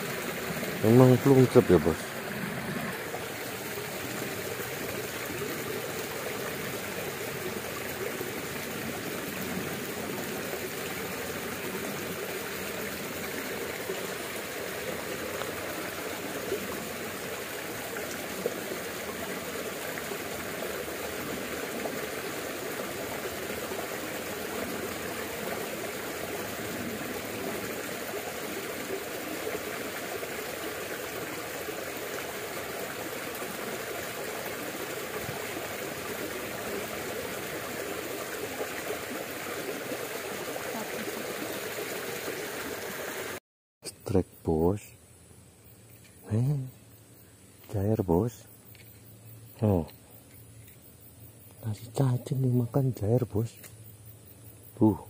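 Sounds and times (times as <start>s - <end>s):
creek water rushing: 0.0s - 43.4s.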